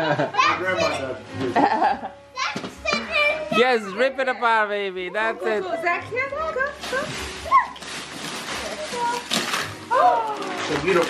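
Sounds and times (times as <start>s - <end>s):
wrapping paper tearing: 6.6s - 11.0s.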